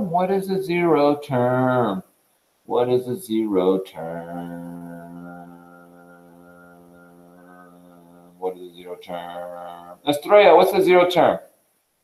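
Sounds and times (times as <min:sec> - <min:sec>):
steady buzzing hum: 0:00.0 - 0:12.0.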